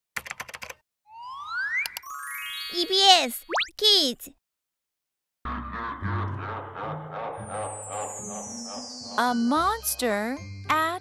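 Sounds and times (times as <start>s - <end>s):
keyboard typing clicks: 0.2s - 0.8s
rising whistle-like tone: 7.4s - 10.6s.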